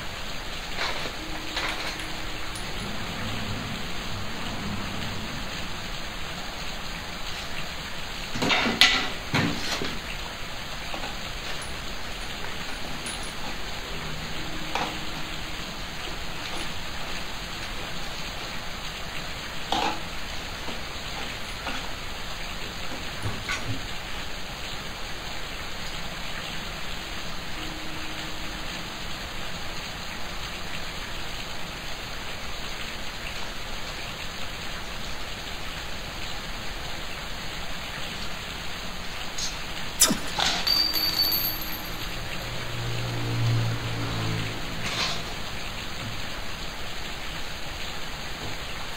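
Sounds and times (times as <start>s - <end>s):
steady hiss: 0.0s - 42.9s.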